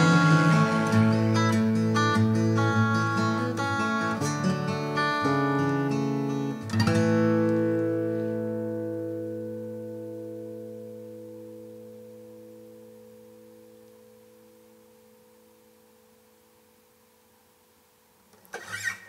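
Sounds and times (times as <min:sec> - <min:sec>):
acoustic guitar chord ringing: 0:00.0 - 0:16.9.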